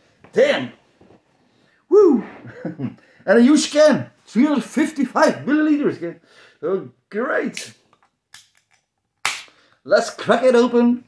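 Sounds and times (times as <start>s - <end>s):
can opening pop and hiss: 9.2s - 9.6s.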